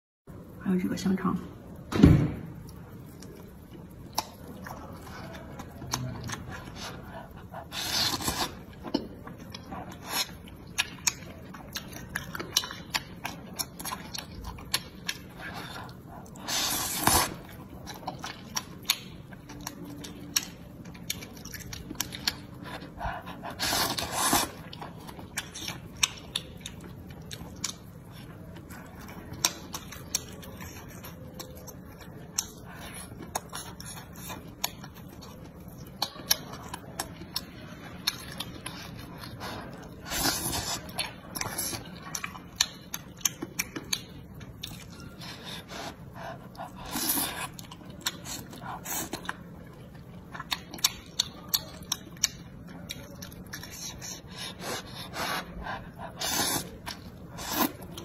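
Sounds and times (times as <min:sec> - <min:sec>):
wet chewing and mouth clicks: 0:02.6 - 0:58.0
slurping noodles: 0:15.4 - 0:17.4, 0:23.4 - 0:24.6.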